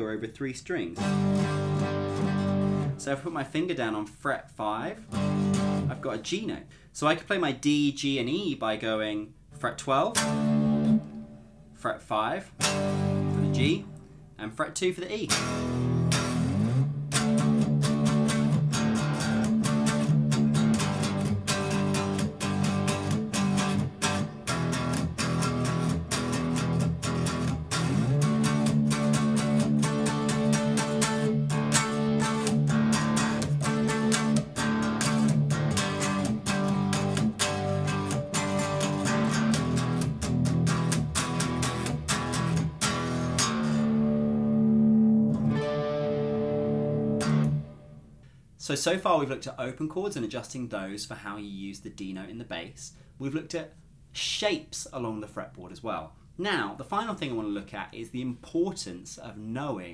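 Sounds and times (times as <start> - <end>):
electric guitar power chords: 1.0 - 3.0, 5.1 - 6.0, 10.1 - 11.8, 12.6 - 14.4, 15.3 - 48.3.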